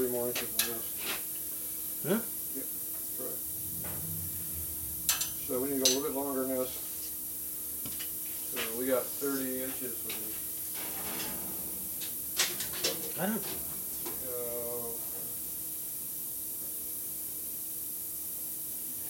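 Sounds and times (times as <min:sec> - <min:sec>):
steady hiss and faint hum: 0:00.0 - 0:19.0.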